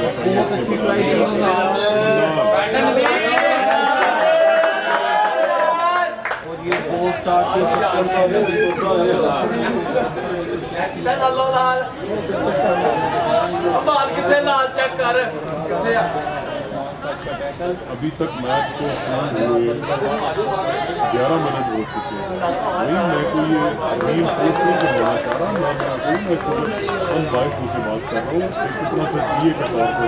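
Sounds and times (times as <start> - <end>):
people talking: 0.0 - 4.4, 5.6 - 30.0.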